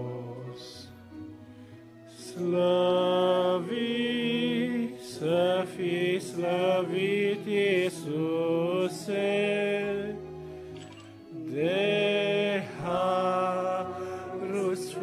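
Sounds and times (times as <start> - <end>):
group singing a hymn: 0.0 - 0.8, 2.2 - 10.4, 11.4 - 15.0.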